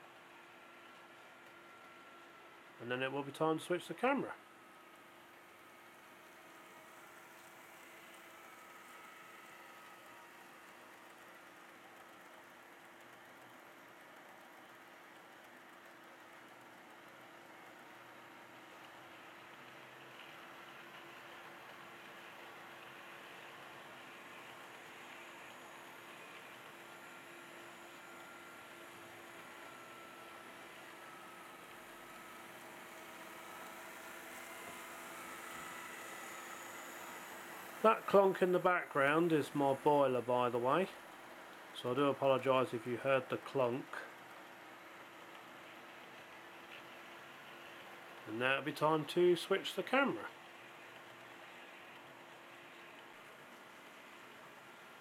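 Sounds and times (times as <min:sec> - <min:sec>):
model train motors whirring: 0:00.0 - 0:55.0.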